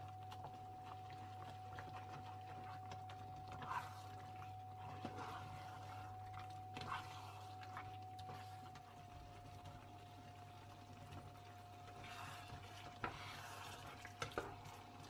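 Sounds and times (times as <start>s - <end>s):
faint sizzle: 0.0s - 15.0s
spatula stirring thick sauce: 0.0s - 15.0s.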